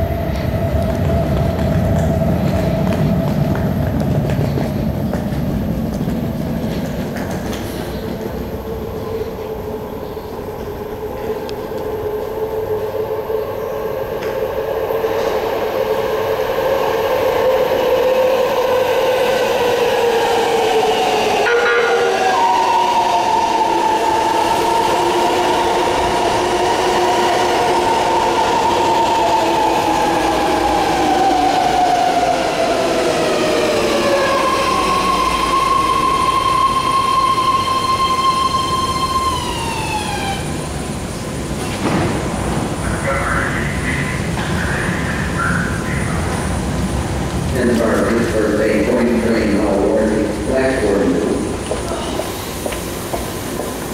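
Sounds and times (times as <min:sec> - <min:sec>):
train wheel rumble: 0:00.0 - 0:53.9
train brake whine: 0:21.2 - 0:26.2
steady high tone: 0:31.0 - 0:40.6.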